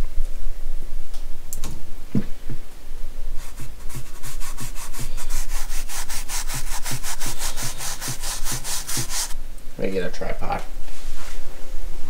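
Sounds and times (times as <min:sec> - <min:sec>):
toothbrush scrubbing: 0:03.4 - 0:09.4.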